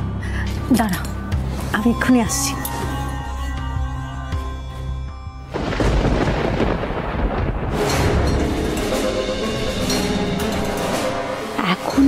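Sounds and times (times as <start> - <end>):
thunder-like rumble with deep boom: 5.5 - 8.4.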